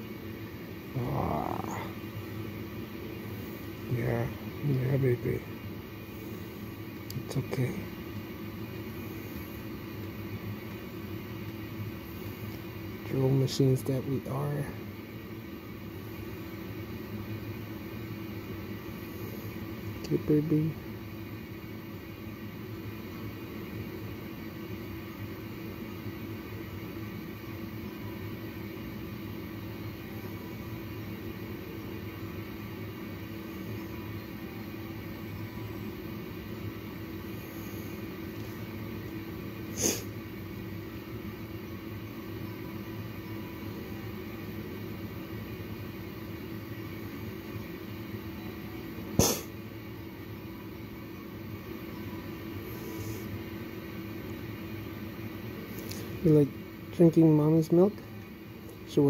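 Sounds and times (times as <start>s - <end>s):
medical equipment hum and hiss: 0.0s - 59.0s
breathing circuit running: 36.9s - 38.9s, 52.5s - 53.5s.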